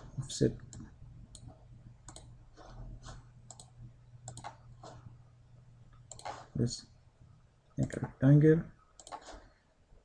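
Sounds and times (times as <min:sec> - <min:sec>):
low steady hum: 0:00.0 - 0:10.0
faint computer mouse clicks: 0:02.1 - 0:02.3.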